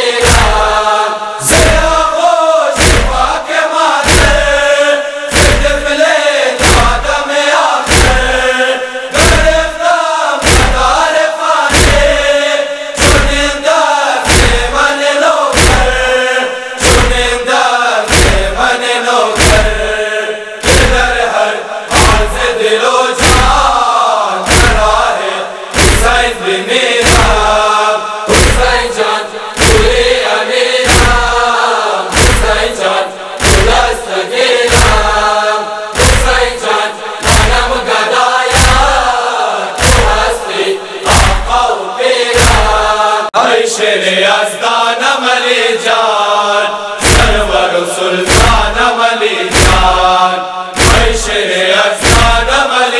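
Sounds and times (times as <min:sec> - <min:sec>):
lamentation chant: 0:00.0 - 0:52.9
heavy thumping beat: 0:00.2 - 0:00.9, 0:01.5 - 0:02.2, 0:02.8 - 0:04.7, 0:05.3 - 0:06.0, 0:06.6 - 0:07.3, 0:07.9 - 0:09.8, 0:10.4 - 0:11.1, 0:11.7 - 0:12.4, 0:13.0 - 0:13.6, 0:14.3 - 0:14.9, 0:15.5 - 0:18.7, 0:19.4 - 0:22.6, 0:23.2 - 0:23.8, 0:24.5 - 0:26.4, 0:27.0 - 0:43.1, 0:47.0 - 0:47.6, 0:48.3 - 0:48.9, 0:49.5 - 0:50.2, 0:50.8 - 0:51.4, 0:52.0 - 0:52.6.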